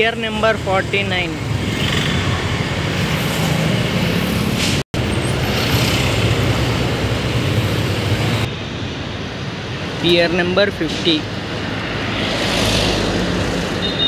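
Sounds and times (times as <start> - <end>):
cars and motorcycles passing: 0.0 - 14.0.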